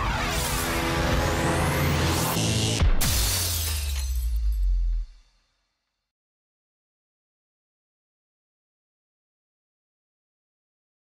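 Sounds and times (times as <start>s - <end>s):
glassy shattering crash: 3.0s - 5.3s.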